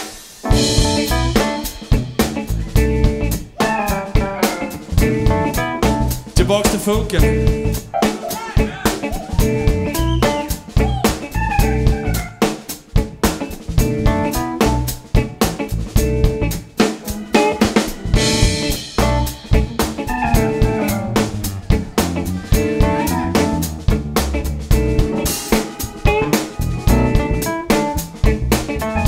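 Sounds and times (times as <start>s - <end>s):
drum kit beat: 0.0s - 29.0s
funk band playing: 0.0s - 29.0s.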